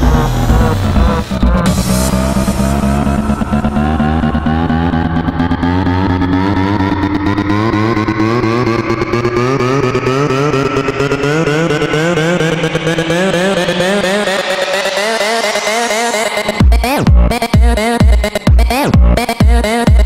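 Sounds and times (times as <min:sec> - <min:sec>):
wavering synth line rising: 0:00.0 - 0:17.0
electro house music: 0:00.0 - 0:20.0.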